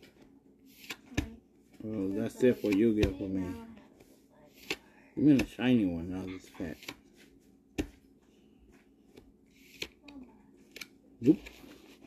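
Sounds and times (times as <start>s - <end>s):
cards flipped by hand: 0.0s - 1.3s, 2.4s - 3.1s, 6.7s - 7.2s, 9.1s - 10.0s, 10.6s - 12.0s.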